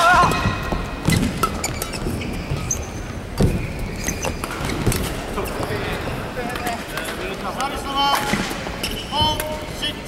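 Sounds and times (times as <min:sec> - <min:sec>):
shoe squeaks on court floor: 0:01.0 - 0:05.8, 0:08.8 - 0:09.4.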